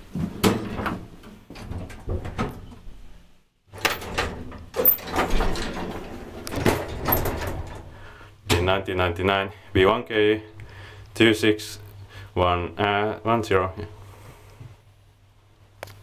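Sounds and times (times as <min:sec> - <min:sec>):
clicks and clunks: 0:03.8 - 0:07.9
elevator doors sliding closed: 0:03.8 - 0:08.0.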